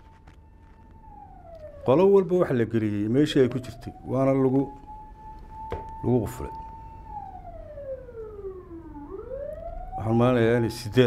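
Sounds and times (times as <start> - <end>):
siren wailing: 0.0 - 11.0.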